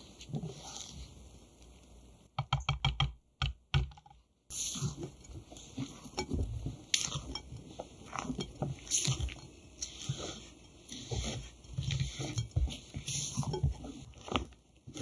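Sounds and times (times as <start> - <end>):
whisk and spatula folding batter: 0.0 - 3.0, 4.5 - 15.0.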